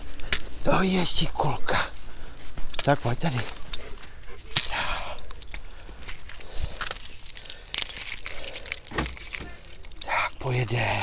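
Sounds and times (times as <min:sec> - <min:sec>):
car keys jangling: 0:03.4 - 0:11.0.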